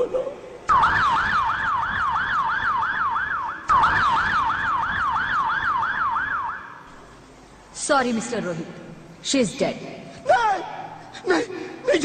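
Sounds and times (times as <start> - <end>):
emergency siren yelping: 0.7 - 6.9.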